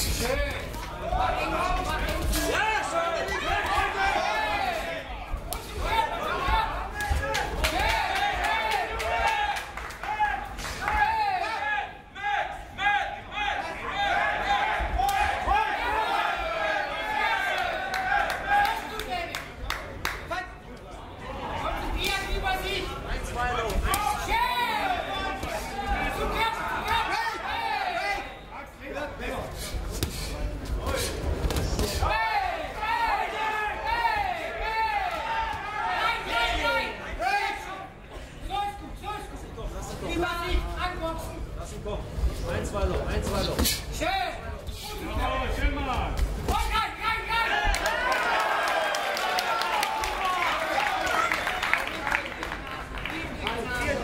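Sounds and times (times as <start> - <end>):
crowd shouting: 0.5 - 19.0, 23.8 - 28.5, 31.8 - 38.0, 46.5 - 51.7.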